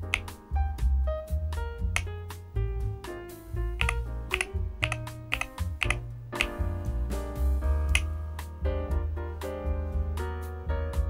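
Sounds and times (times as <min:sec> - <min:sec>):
background music: 0:00.0 - 0:11.0
keyboard key clacks: 0:03.8 - 0:06.6.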